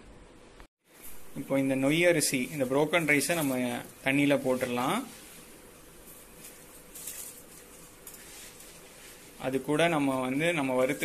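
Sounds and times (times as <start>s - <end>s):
soft rustles: 2.3s - 11.0s.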